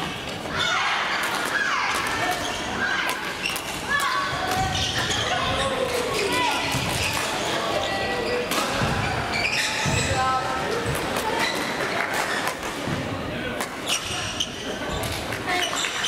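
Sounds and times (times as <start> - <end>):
players chattering and calling: 0.0 - 16.0.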